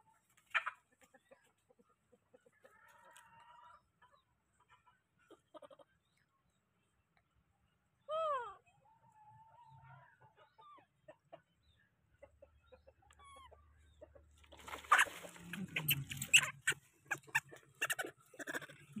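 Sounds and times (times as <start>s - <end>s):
scuffling noises: 14.5s - 17.4s
animal squawks: 14.7s - 19.0s.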